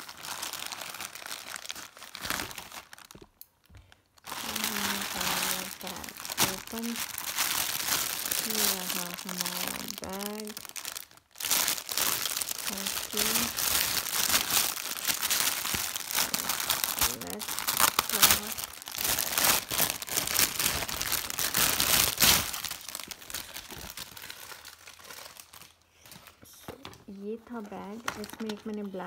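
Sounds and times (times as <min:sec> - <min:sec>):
plastic packaging crinkling: 0:00.0 - 0:29.0.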